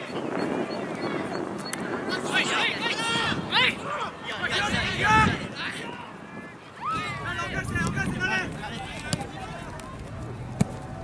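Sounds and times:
people shouting calls: 2.1s - 9.4s.

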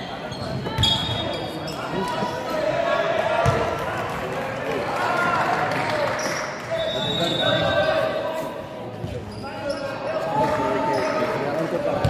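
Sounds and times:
basketball game bustle: 0.0s - 12.0s.

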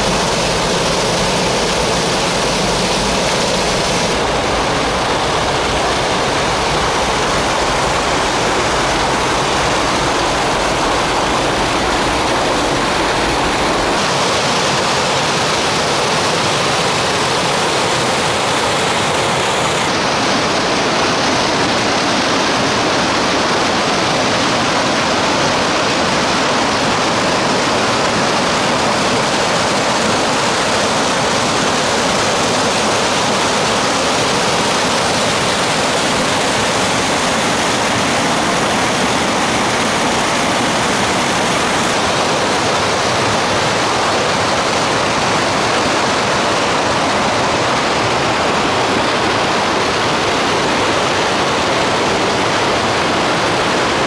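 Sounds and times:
water rushing over boulders: 0.0s - 54.0s.

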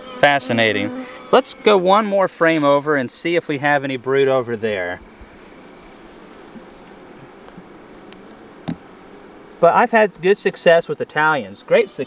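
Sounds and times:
honey bees humming: 0.0s - 12.0s.

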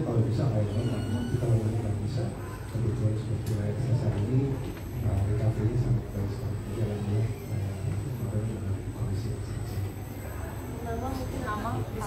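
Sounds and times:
man talking into microphone: 0.0s - 9.8s.

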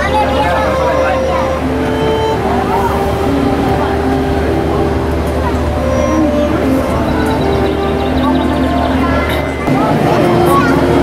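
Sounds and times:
background music held notes: 0.0s - 11.0s
indistinct chatter: 0.0s - 11.0s.

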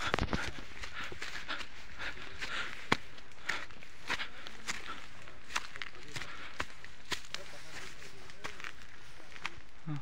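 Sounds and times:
footsteps on dry grass: 0.0s - 10.0s.

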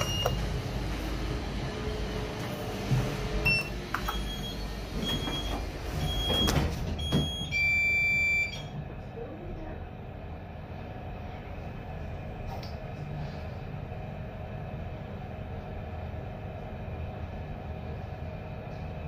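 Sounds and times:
lift car humming: 0.0s - 19.0s.

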